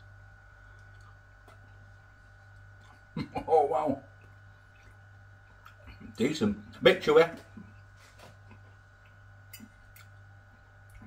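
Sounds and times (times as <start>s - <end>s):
low steady hum: 0.0s - 11.0s
chewing: 0.6s - 3.2s, 4.2s - 6.1s, 7.6s - 11.0s.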